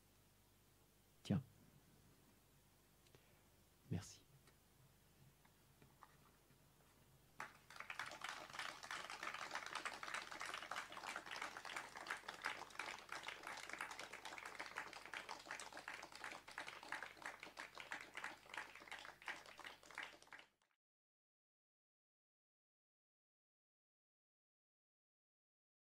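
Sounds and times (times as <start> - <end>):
audience applauding: 7.4 - 20.6.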